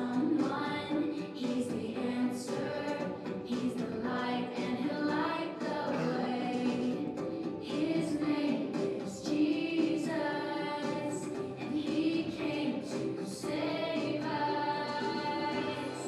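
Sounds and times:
children singing along: 0:00.0 - 0:16.0
voices singing over backing track: 0:00.0 - 0:16.0.

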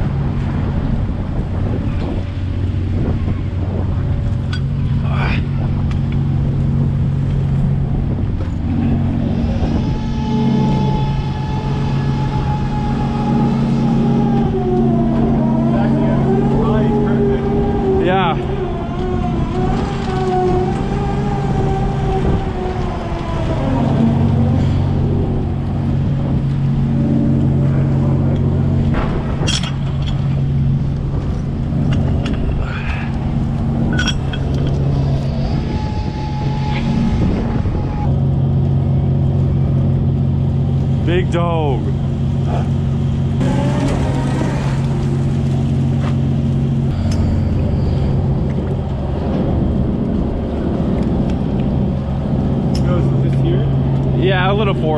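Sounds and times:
boat engine hum: 0:00.0 - 0:54.9
wavering winch whine: 0:00.0 - 0:54.9.

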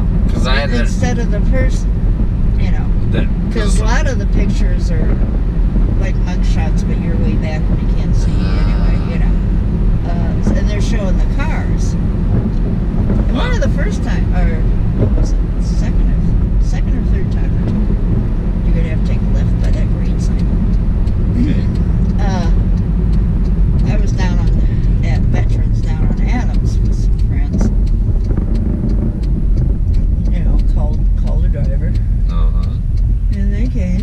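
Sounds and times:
car engine and tyres rumbling: 0:00.0 - 0:34.0
voices talking: 0:00.2 - 0:01.8, 0:02.6 - 0:05.2, 0:06.0 - 0:12.0, 0:13.2 - 0:14.6, 0:15.2 - 0:17.8, 0:18.6 - 0:20.6, 0:21.3 - 0:22.7, 0:23.8 - 0:27.7, 0:30.0 - 0:34.0.

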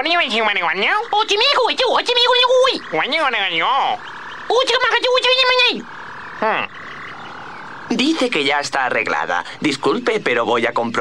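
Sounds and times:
cartoon alien voice babbling: 0:00.0 - 0:07.3
faint electronic hum: 0:00.0 - 0:11.0.

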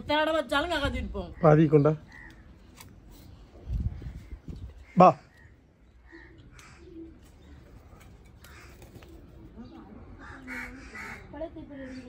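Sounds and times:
crows cawing: 0:01.3 - 0:02.6, 0:04.1 - 0:09.2, 0:10.1 - 0:12.0
faint voices talking: 0:06.0 - 0:12.0.

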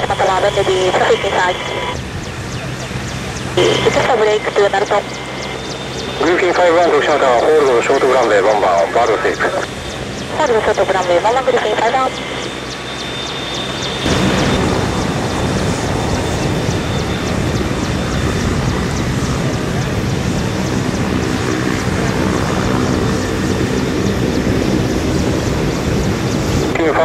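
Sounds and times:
helicopter turbine and rotor: 0:00.0 - 0:27.0.

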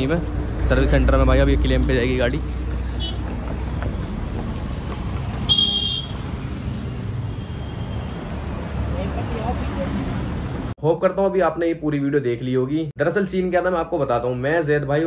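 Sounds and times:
road traffic noise: 0:00.0 - 0:10.8
short vehicle horn toot: 0:05.5 - 0:06.2.

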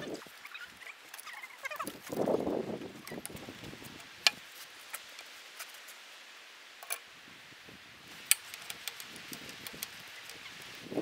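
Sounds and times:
hand tools clicking on steel: 0:08.2 - 0:10.9.

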